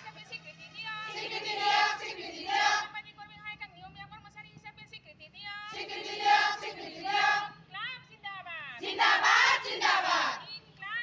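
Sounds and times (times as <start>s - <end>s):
crowd of women chanting: 0.9s - 2.9s, 5.7s - 7.6s, 8.8s - 10.5s.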